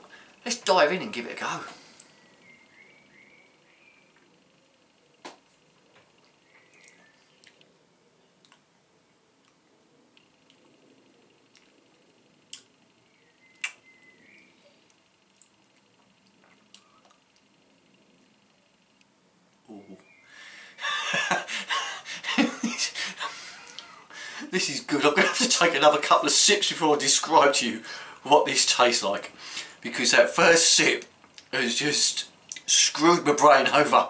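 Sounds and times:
lip smacks: 6.8 - 7.7, 8.4 - 8.7, 13.5 - 13.8, 23.6 - 23.9, 32.4 - 32.7.

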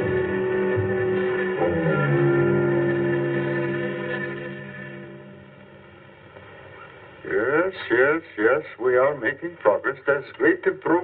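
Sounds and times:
film dialogue: 7.2 - 11.0.

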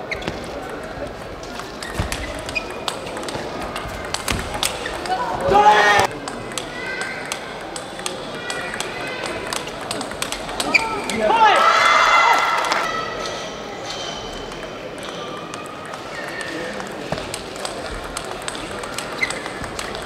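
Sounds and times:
table tennis ball clicking: 0.4 - 11.3, 14.2 - 20.0.

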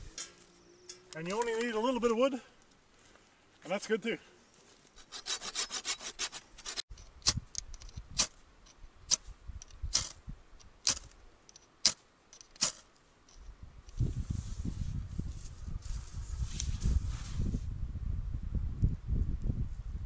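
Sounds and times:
hand saw cutting sticks: 4.9 - 7.4, 10.8 - 11.1, 11.8 - 12.8
sharp wood clicks: 9.1 - 12.8.

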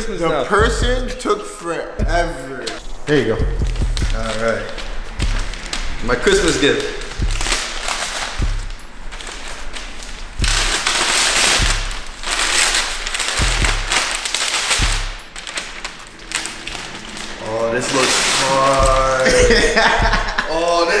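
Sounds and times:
dull low thumps: 0.5 - 1.2, 2.0 - 17.2, 18.8 - 20.5
wrapping paper crinkling and tearing: 4.0 - 21.0.

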